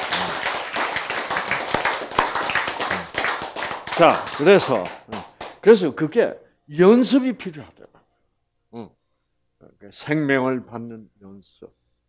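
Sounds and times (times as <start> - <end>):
audience clapping: 0.0 - 5.6.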